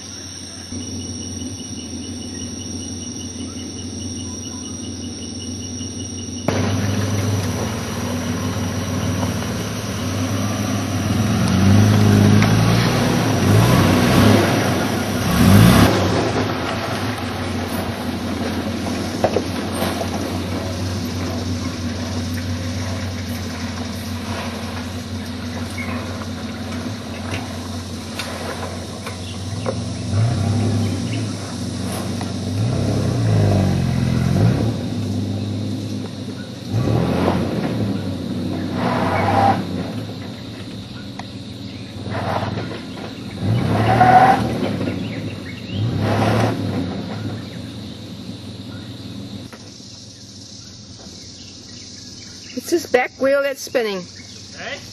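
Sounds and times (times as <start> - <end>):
vehicle engine labouring and revving: 0.0 - 54.9
vehicle knocks: 17.6 - 29.9.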